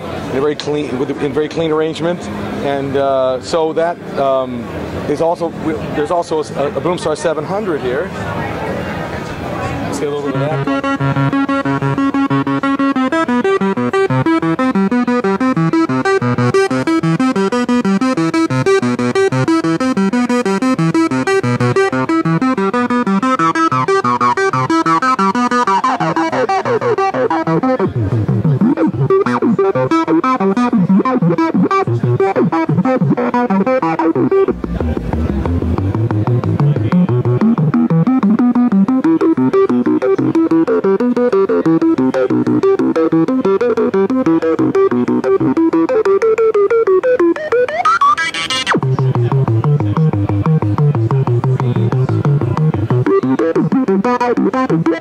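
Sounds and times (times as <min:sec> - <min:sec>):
synthesizer filter sweeps: 0:09.8 - 0:55.0
synthesizer playing fast note run: 0:09.9 - 0:55.0.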